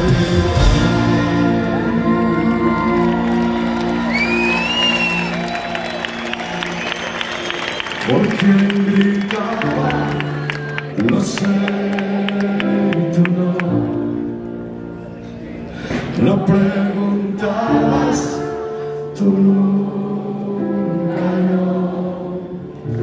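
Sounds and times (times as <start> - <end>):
rock band sustained chords: 0.0 - 7.7
crowd cheering and whistling: 0.8 - 11.2.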